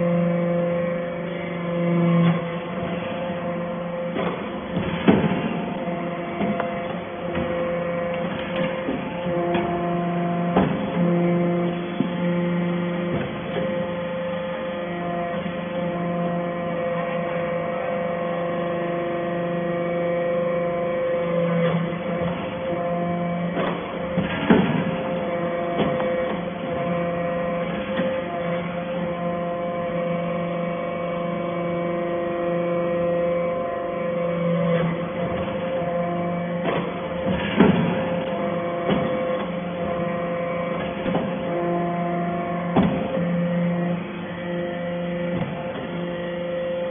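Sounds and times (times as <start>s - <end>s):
hydraulic press humming: 0.0s - 46.9s.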